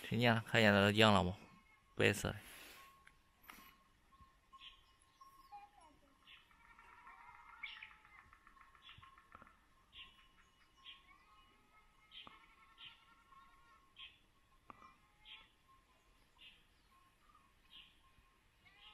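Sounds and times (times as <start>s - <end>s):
high bird chirps: 4.1s - 6.6s, 7.5s - 13.1s, 14.0s - 18.9s
bird trill: 4.1s - 18.9s.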